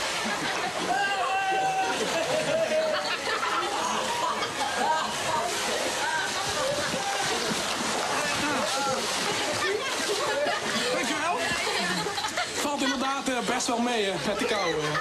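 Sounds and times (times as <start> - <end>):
water splashing: 0.0 - 15.0
excited voices calling out: 0.8 - 2.3.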